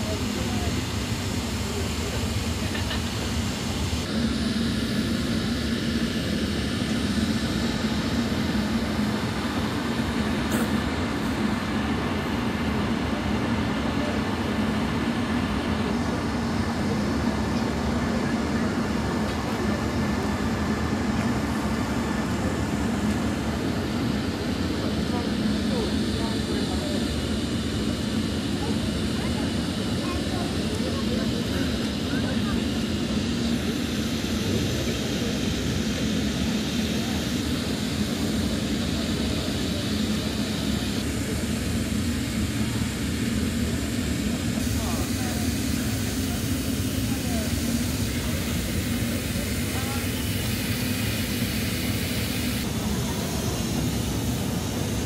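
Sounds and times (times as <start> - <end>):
faint murmur of voices: 0.0 - 55.0
ship machinery drone: 0.0 - 55.0.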